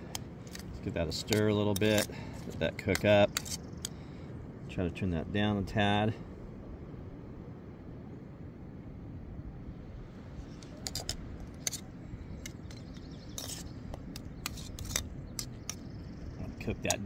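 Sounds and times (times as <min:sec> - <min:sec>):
steady low rumble: 0:00.0 - 0:17.0
metal spoon scraping pot: 0:00.4 - 0:02.1, 0:02.9 - 0:03.6, 0:10.6 - 0:11.8, 0:12.4 - 0:13.7, 0:14.4 - 0:15.8.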